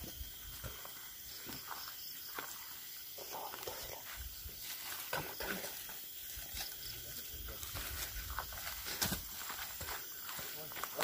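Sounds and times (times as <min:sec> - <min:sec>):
footsteps in dry leaves: 0:04.0 - 0:11.0.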